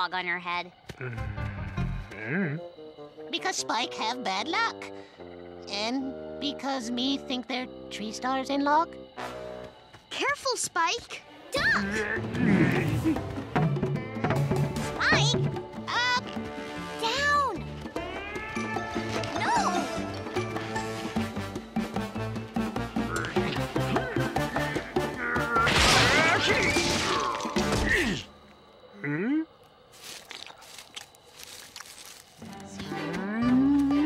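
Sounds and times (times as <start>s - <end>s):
cartoon background music: 1.0s - 28.2s, 32.4s - 34.0s.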